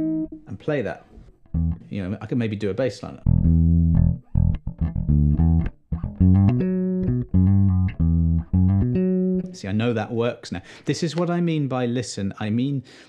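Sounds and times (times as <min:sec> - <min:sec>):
electric bass plucked notes: 0:00.0 - 0:00.6, 0:01.3 - 0:02.0, 0:03.2 - 0:09.6.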